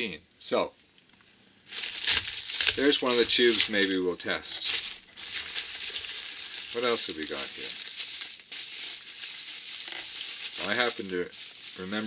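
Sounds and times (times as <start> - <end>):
bubble wrap crinkling: 1.6 - 12.0.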